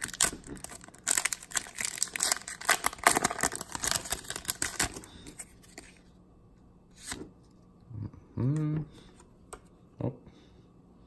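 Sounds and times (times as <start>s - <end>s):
foil wrapper tearing and crinkling: 0.0s - 5.3s.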